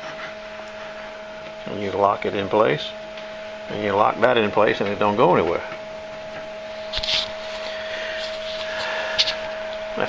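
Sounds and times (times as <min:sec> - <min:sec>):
sharpening machine motor humming: 0:06.6 - 0:10.0.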